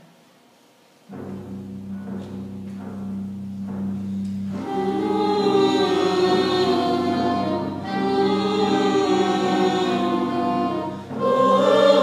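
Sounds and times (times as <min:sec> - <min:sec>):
choir singing held chords: 0:04.4 - 0:12.0.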